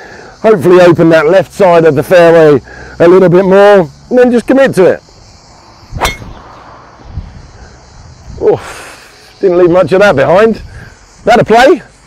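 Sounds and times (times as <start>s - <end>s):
golf driver striking ball: 6.0s - 6.5s.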